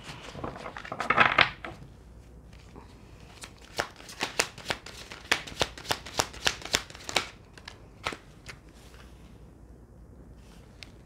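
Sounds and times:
cards being shuffled: 0.0 - 1.8, 2.5 - 9.1.

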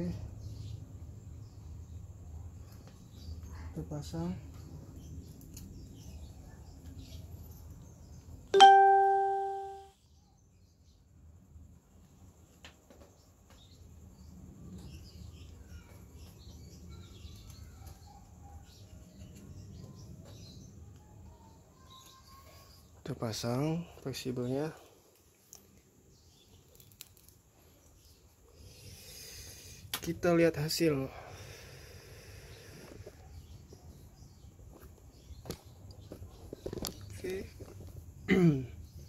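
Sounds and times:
bright chime ding: 8.6 - 9.9.

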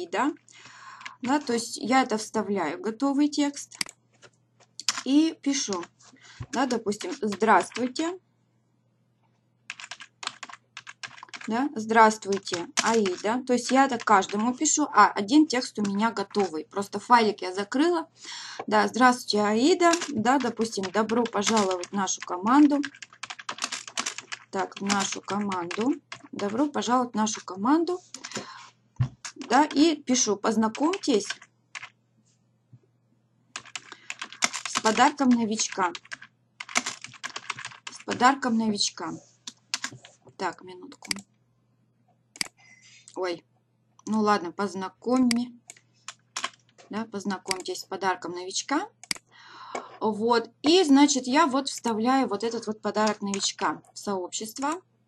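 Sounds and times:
computer keyboard typing: 0.2 - 1.7, 4.8 - 8.0, 9.7 - 14.7, 15.5 - 16.6, 19.6 - 29.9, 30.5 - 31.9, 33.6 - 38.4, 39.5 - 41.3, 42.4 - 42.6, 45.1 - 46.7, 47.4 - 47.8, 49.0 - 49.3, 53.0 - 53.6, 54.6 - 54.8.

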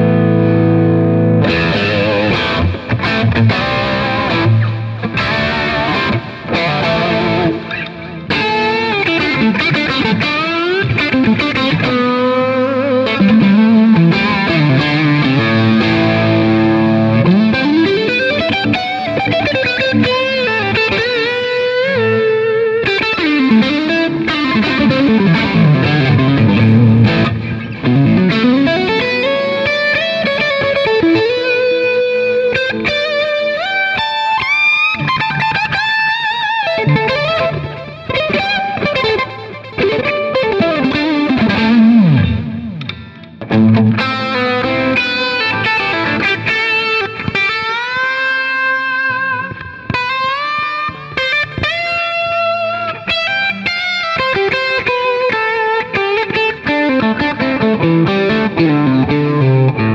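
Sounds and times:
electric guitar lead lines: 0.0 - 59.9.

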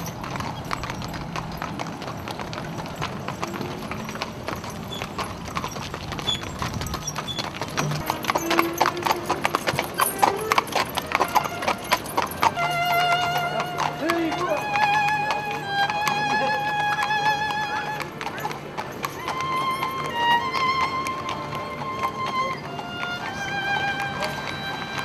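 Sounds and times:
hooves clip-clopping on asphalt: 0.0 - 25.0.

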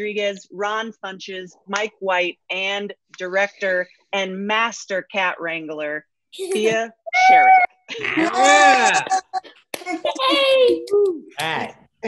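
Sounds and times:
people cheering and calling out: 7.1 - 9.4
hand claps: 10.7 - 11.7.

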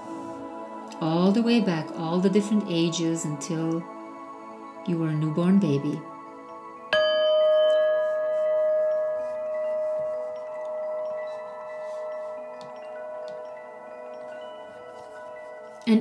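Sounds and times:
struck chime ringing: 6.9 - 15.9
higher chime tones: 6.9 - 16.0.

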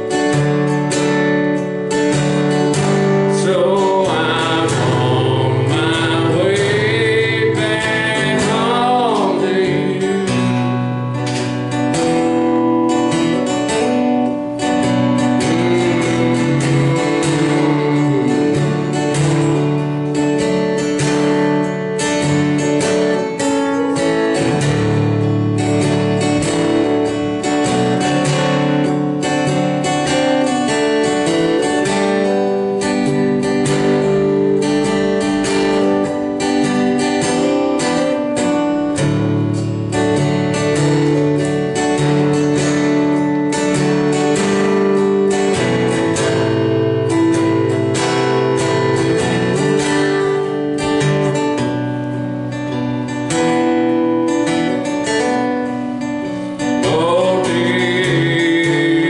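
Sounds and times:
acoustic guitar chords: 0.0 - 59.0.

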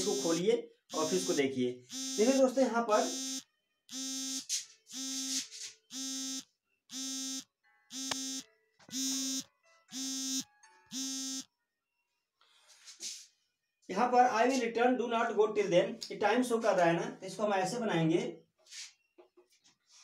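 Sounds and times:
electronic buzzer beeping: 0.0 - 11.5.

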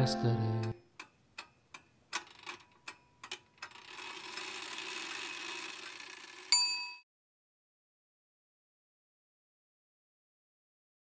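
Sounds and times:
faint metallic ticks: 0.6 - 3.8
bright ding: 6.5 - 7.0.

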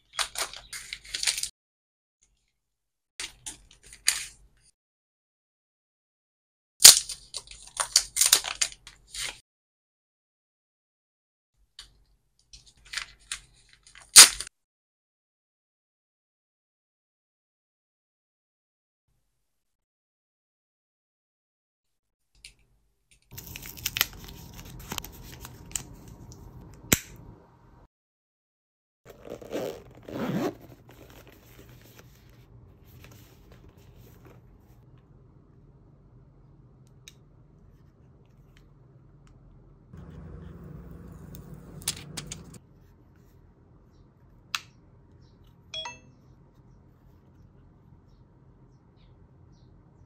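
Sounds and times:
fabric case rustling: 29.1 - 34.8.

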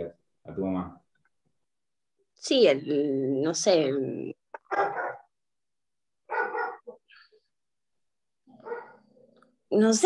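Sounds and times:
dog barking: 4.6 - 5.4, 6.3 - 7.1, 8.5 - 9.3.

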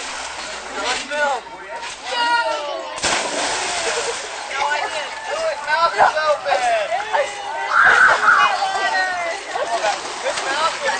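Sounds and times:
water splashing: 0.0 - 6.6, 7.8 - 10.9
young voices calling out: 7.0 - 9.5.

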